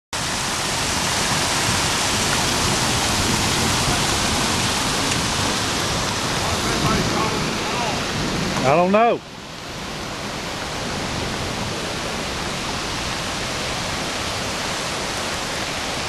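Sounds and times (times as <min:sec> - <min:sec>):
floodwater rushing: 0:00.1 - 0:16.0.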